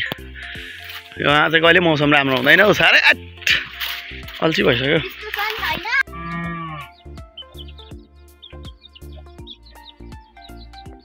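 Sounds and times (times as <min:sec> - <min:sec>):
music with beat and plucked notes: 0:00.0 - 0:11.0
cow mooing: 0:06.0 - 0:07.0.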